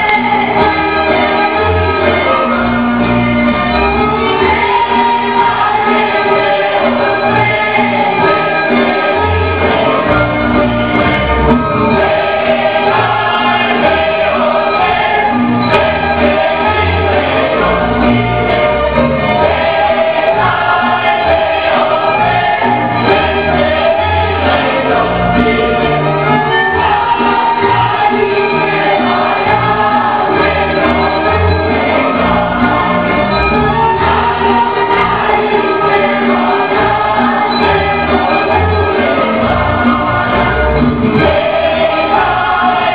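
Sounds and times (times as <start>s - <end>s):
folk dance music with singing: 0.0s - 42.9s.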